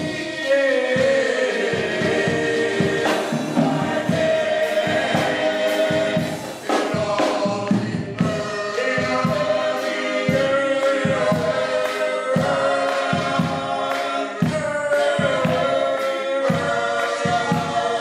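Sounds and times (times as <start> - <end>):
male vocal group singing: 0.0 - 18.0
rhythmic accompaniment: 0.0 - 18.0.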